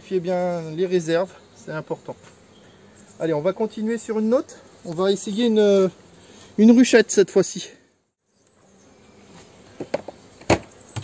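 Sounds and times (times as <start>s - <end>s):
faint buzz of bees: 0.0s - 11.0s.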